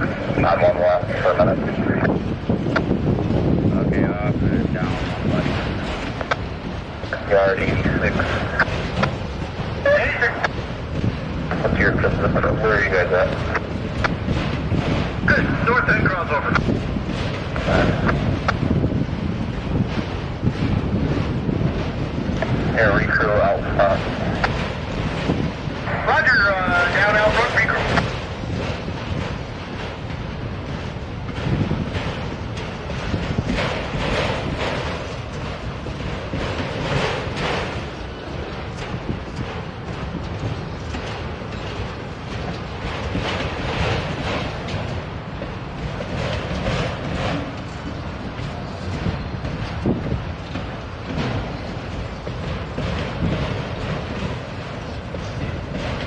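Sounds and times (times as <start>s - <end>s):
freight train wheels rumbling: 0.0s - 56.0s
wind buffeting microphone: 0.0s - 56.0s.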